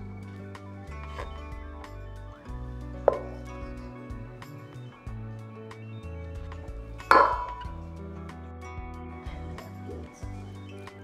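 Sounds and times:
soft background music: 0.0s - 11.0s
kitchenware clinking: 7.1s - 7.7s.

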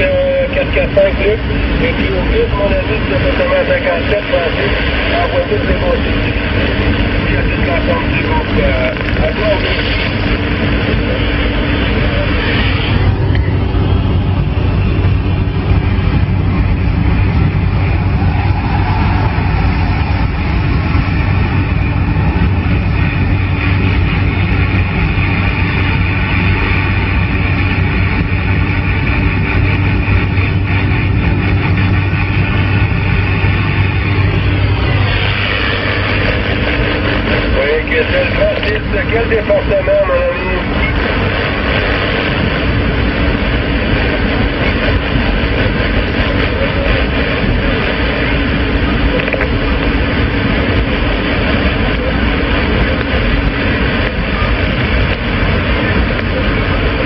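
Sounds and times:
faint radio voices: 0.0s - 57.0s
low hum: 0.0s - 57.0s
radio static hiss: 0.0s - 57.0s.

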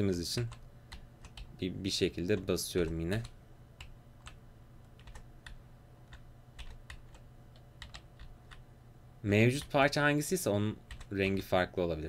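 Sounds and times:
low steady hum: 0.0s - 12.0s
keyboard keys clicking: 2.3s - 8.6s.

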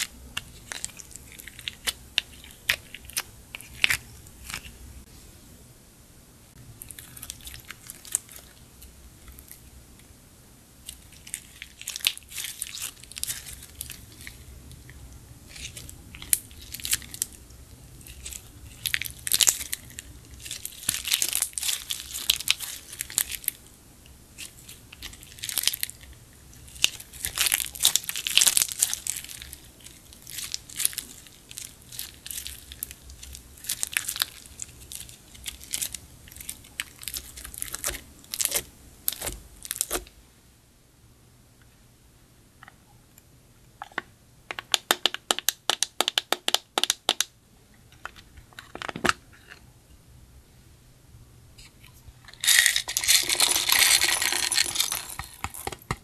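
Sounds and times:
slime squeezed with crackles and pops: 26.6s - 40.0s.

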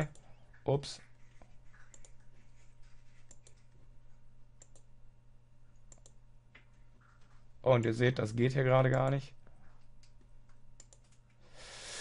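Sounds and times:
low steady hum: 0.0s - 12.0s
mouse and keyboard clicks: 3.2s - 3.7s, 5.9s - 7.2s, 10.0s - 11.3s.

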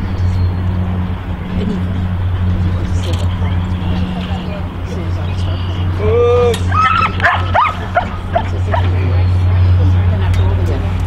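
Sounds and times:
steady low hum: 0.0s - 11.0s
dog whining: 6.7s - 8.9s
dog yipping: 6.7s - 8.9s.

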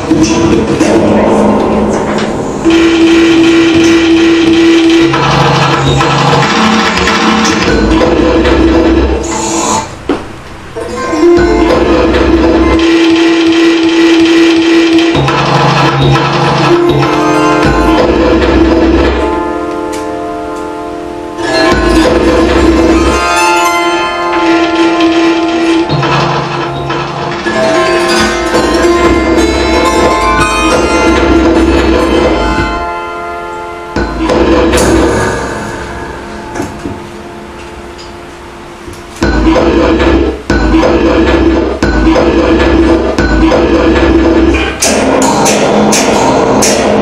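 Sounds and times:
grinding noise music: 0.0s - 47.0s
held drone tones: 0.0s - 47.0s.

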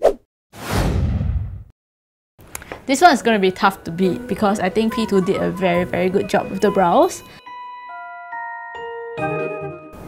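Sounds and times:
sharp swish: 0.0s - 1.5s.

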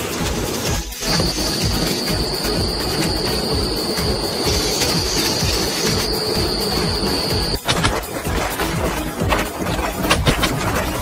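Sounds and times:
mechanical clatter: 0.0s - 11.0s
metalworking machine whine: 0.5s - 11.0s.

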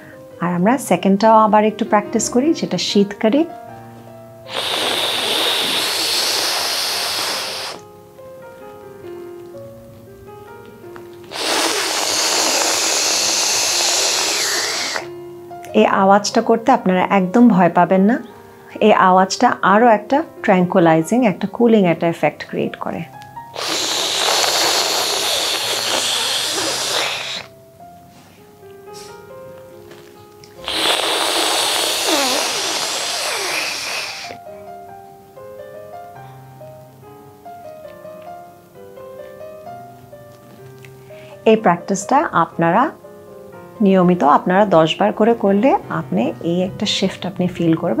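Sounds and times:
hissing inhale through teeth: 0.0s - 0.2s, 4.5s - 7.8s, 11.3s - 15.2s, 23.5s - 27.6s, 30.5s - 34.6s, 40.9s - 41.4s
soft background music: 0.0s - 48.0s.

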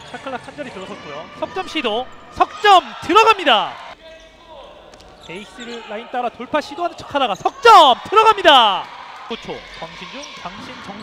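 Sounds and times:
indoor basketball game: 0.0s - 11.0s.

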